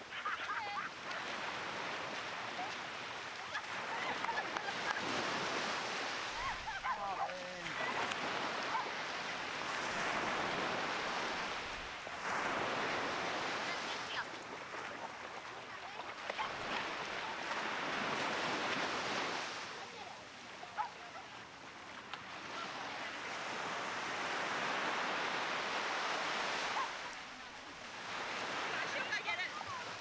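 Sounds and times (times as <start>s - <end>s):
small waves breaking on beach: 0.0s - 30.0s.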